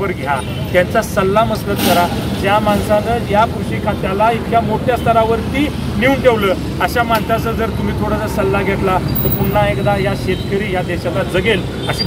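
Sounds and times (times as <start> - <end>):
man speaking: 0.0 - 12.0
road traffic noise: 0.0 - 12.0.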